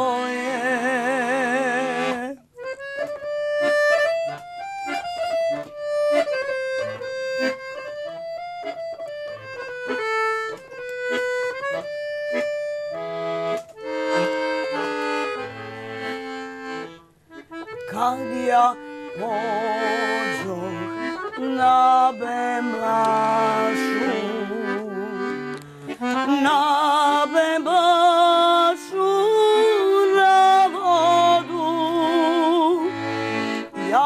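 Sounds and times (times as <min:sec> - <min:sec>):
accordion melody: 0:00.0 - 0:34.0.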